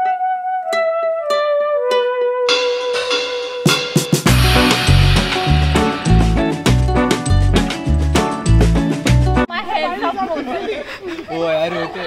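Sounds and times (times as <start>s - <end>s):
music with heavy bass beat: 2.5s - 9.4s
people chattering: 9.5s - 12.0s.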